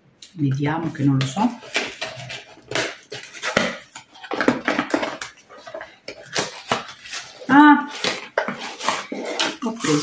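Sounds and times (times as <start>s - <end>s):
packaging rustling and crinkling: 1.3s - 10.0s.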